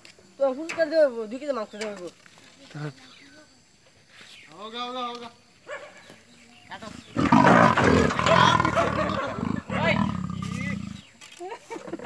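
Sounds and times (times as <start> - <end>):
tiger roaring: 7.1 - 11.1.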